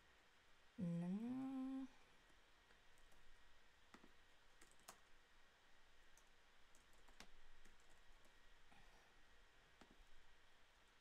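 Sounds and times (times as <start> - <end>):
computer keyboard clicks: 3.9 - 5.1, 6.2 - 8.3.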